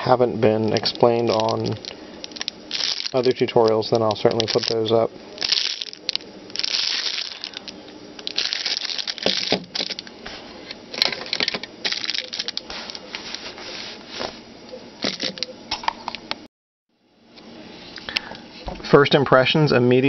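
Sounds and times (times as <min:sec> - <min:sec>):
plastic bag crinkling: 0:00.7 - 0:10.1, 0:10.9 - 0:13.6.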